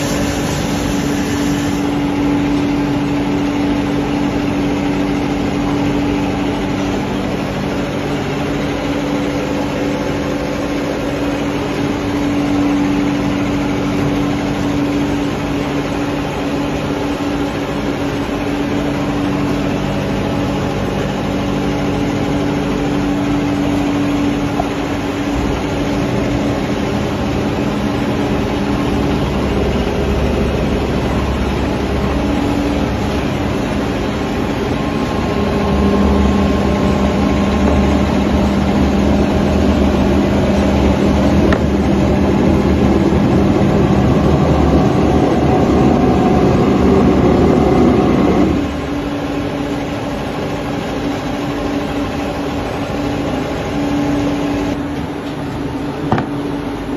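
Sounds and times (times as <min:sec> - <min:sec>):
factory machinery humming: 0:00.0 - 0:56.9.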